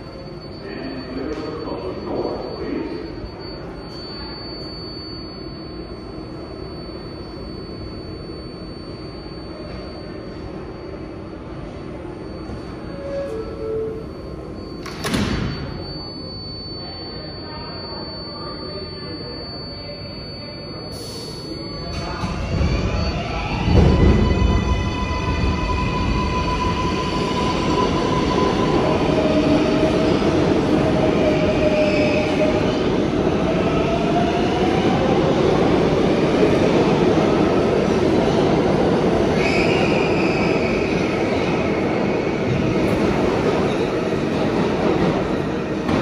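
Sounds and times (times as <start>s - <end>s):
echoing station background noise: 0.0s - 46.0s
subway train equipment humming: 0.0s - 46.0s.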